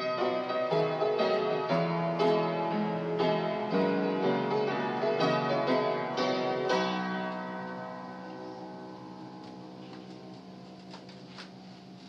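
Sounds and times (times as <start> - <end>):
piano chord ringing: 0.0 - 11.1.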